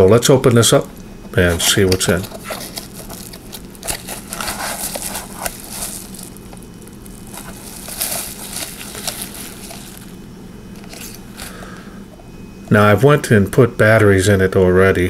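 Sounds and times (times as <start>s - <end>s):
bubble wrap crinkling: 1.4s - 11.8s
cardboard box rubbing: 2.1s - 6.4s.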